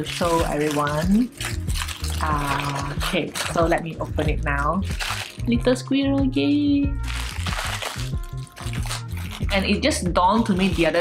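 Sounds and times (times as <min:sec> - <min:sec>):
paper packaging crinkling and tearing: 0:00.0 - 0:05.5, 0:07.0 - 0:11.0
background music with low held notes: 0:00.0 - 0:11.0.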